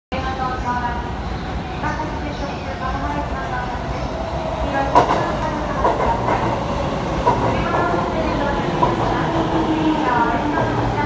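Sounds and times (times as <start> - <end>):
electric train rolling past: 0.4 - 11.0
wheels clacking over rails: 4.9 - 9.6.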